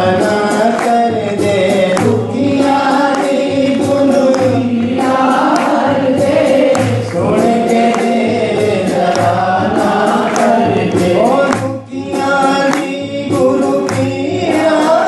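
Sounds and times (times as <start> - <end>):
music with steady beat: 0.0 - 15.0
voices singing together: 0.0 - 15.0.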